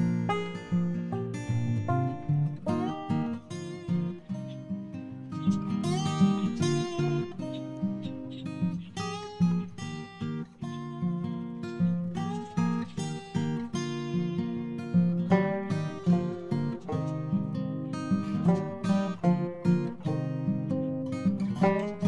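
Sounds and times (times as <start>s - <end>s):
acoustic guitar strumming chords: 0.0s - 22.0s.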